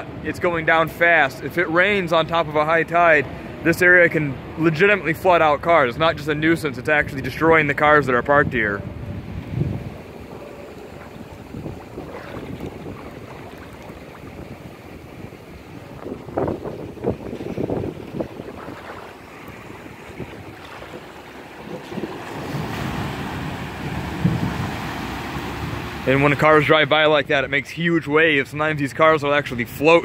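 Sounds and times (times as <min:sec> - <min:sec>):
van driving through floodwater: 0:00.0 - 0:28.2
wind buffeting microphone: 0:05.6 - 0:28.4.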